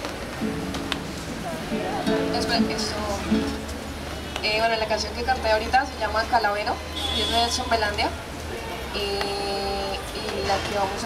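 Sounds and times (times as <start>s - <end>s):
acoustic guitar: 0.0s - 4.3s.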